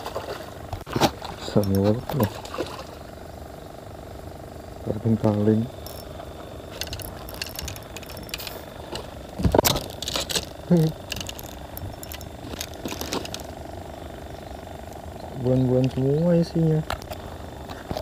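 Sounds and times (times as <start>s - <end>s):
steady low hum: 0.0s - 18.0s
handling clicks and rustles: 0.7s - 2.7s, 5.2s - 18.0s.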